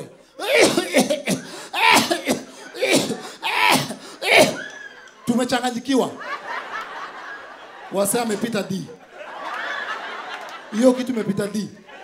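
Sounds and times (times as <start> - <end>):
man fake coughing into microphone: 0.4 - 4.6.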